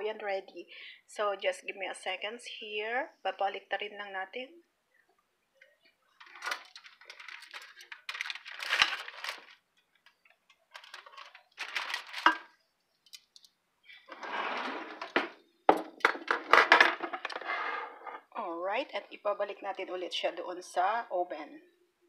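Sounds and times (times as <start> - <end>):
aluminium foil crinkling: 6.2 - 13.5.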